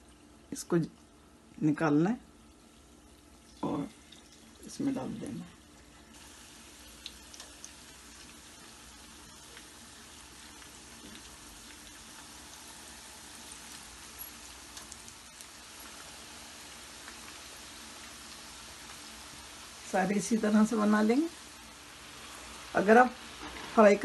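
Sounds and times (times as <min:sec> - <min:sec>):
potato wedges sizzling in oil: 0:00.0 - 0:24.0
oil popping and crackling: 0:02.5 - 0:19.9.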